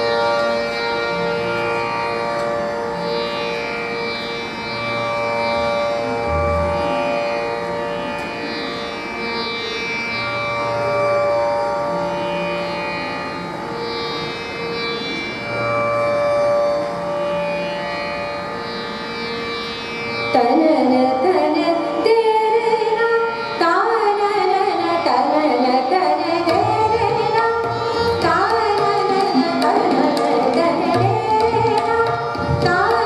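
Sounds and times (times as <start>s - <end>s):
bowed string instrument: 0.0s - 33.0s
harmonium: 0.0s - 33.0s
woman singing: 20.4s - 33.0s.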